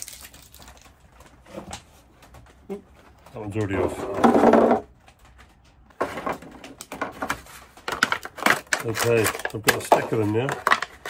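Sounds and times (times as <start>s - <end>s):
plastic bottles crinkling: 0.0s - 1.6s, 6.0s - 11.0s.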